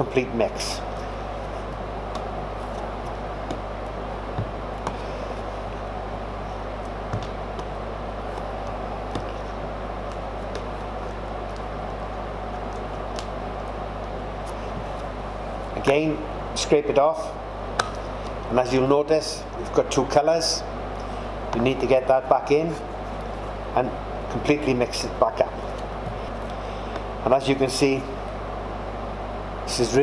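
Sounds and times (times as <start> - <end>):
low hum: 0.0 - 29.7.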